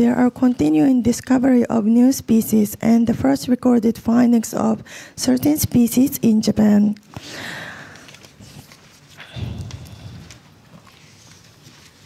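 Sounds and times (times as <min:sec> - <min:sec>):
paper rustling: 0:07.9 - 0:12.0.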